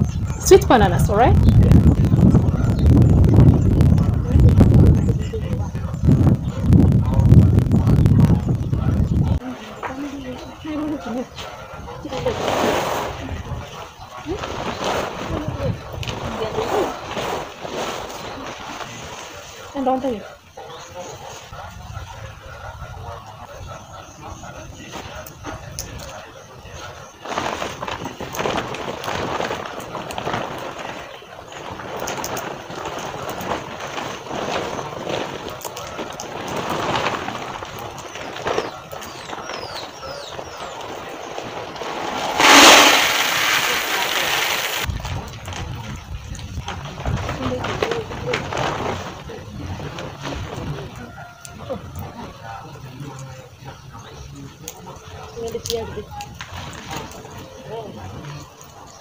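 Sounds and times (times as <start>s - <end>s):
plastic sacks rustling: 12.1s - 20.2s, 27.1s - 51.2s.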